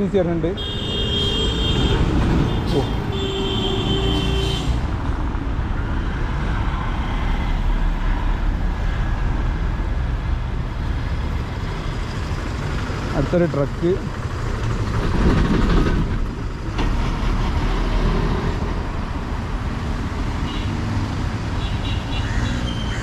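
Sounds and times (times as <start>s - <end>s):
road traffic rumble: 0.0s - 23.0s
vehicle horn blasts: 0.6s - 4.8s.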